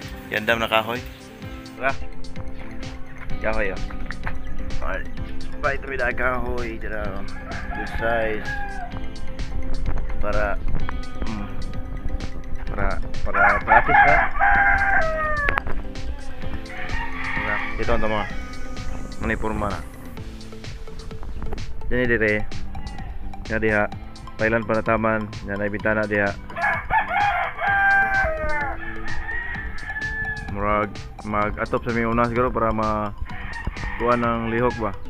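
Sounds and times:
rooster crowing: 6.9s - 9.2s, 13.3s - 19.2s, 22.4s - 23.3s, 26.5s - 30.6s, 33.3s - 35.0s.

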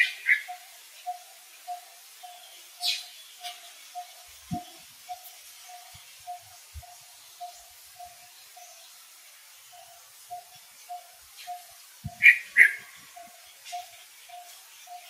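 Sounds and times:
sharp high animal calls: 9.8s - 15.0s.

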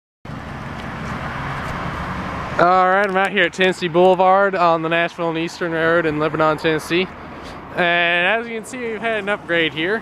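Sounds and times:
car passing with tyre noise: 0.3s - 10.0s.

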